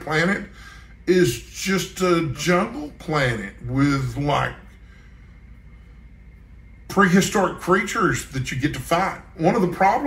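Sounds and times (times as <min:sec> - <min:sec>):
man speaking: 0:00.0 - 0:04.7, 0:06.9 - 0:10.0
faint steady low hum: 0:00.0 - 0:10.0
thin high tone: 0:01.2 - 0:04.7.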